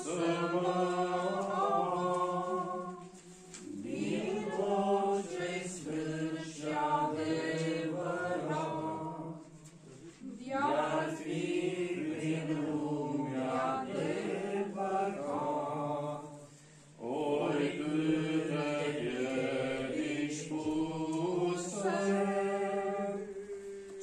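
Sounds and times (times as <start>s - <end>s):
men singing a hymn: 0.0s - 9.6s, 10.4s - 24.0s.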